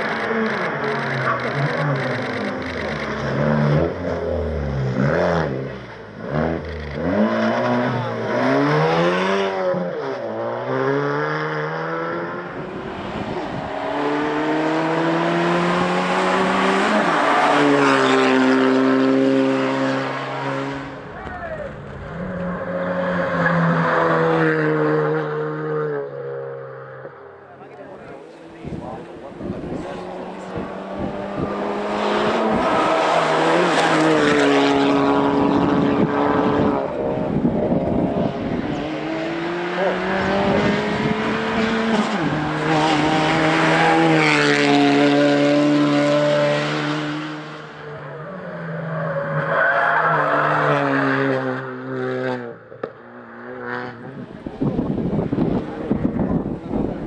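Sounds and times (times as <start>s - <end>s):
rally car engines revving: 0.0s - 57.0s.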